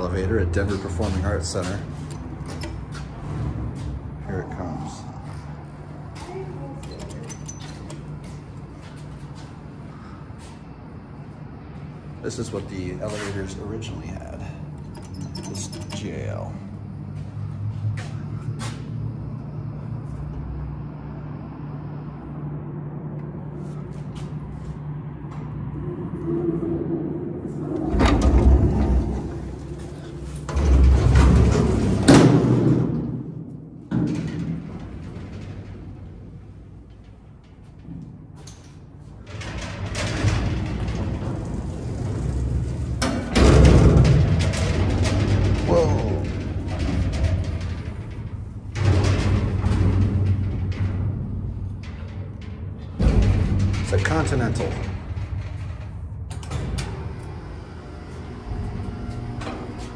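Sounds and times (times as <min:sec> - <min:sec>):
elevator doors clattering: 0:00.0 - 0:10.4, 0:11.1 - 0:21.1, 0:25.1 - 0:59.9
elevator machinery hum: 0:00.0 - 0:59.9
metal gate rattling: 0:06.6 - 0:08.3, 0:14.2 - 0:16.6, 0:39.2 - 0:57.3.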